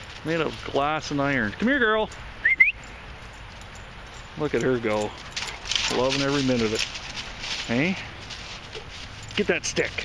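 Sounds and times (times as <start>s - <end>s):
person whistling upward notes: 2.4s - 2.8s.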